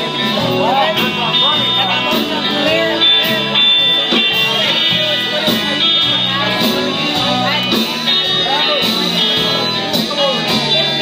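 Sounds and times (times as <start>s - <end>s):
electric guitar: 0.0s - 11.0s
live band playing: 0.0s - 11.0s.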